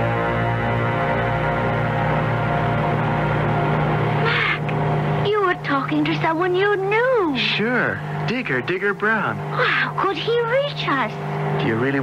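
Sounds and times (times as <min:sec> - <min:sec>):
dark music held tones: 0:00.0 - 0:12.0
light aircraft engine drone: 0:00.0 - 0:12.0.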